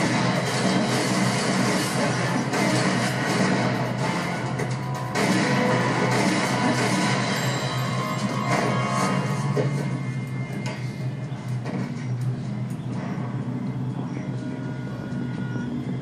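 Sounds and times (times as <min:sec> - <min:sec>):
dense soundtrack music: 0:00.0 - 0:16.0.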